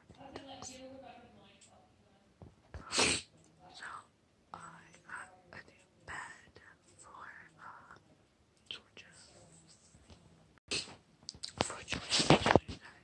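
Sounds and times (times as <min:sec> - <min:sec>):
woman whispering: 0:02.7 - 0:10.1, 0:11.5 - 0:13.0.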